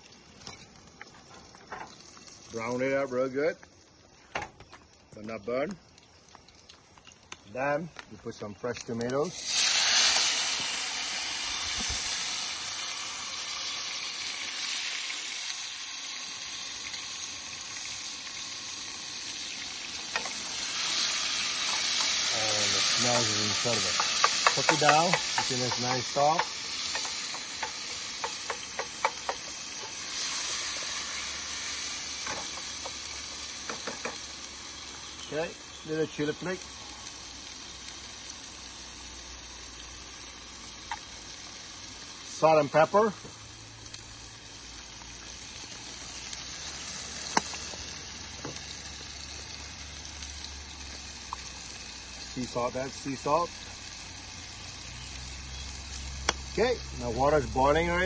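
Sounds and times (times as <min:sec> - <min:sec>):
tomatoes sizzling in oil: 0:00.0 - 0:58.0
wooden spoon tapping pan: 0:23.9 - 0:29.9, 0:33.7 - 0:34.2.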